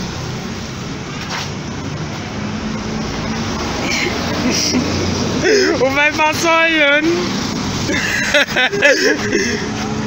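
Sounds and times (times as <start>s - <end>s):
car engine running hard: 0.0s - 10.0s.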